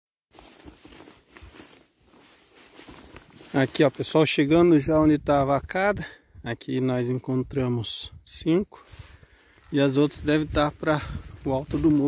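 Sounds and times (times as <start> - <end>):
rustling in brush: 0.3 - 4.2, 8.8 - 12.0
footsteps through grass: 0.3 - 4.8, 8.8 - 12.0.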